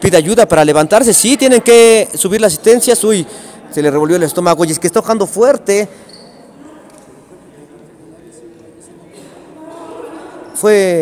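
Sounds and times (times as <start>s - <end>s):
gymnasium background noise: 0.0s - 11.0s
faint indistinct voices: 5.8s - 11.0s.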